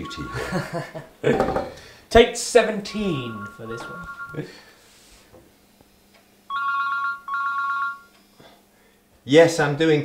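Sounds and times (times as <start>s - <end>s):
telephone ringing: 0.0s - 0.9s, 2.9s - 4.6s, 6.5s - 8.1s.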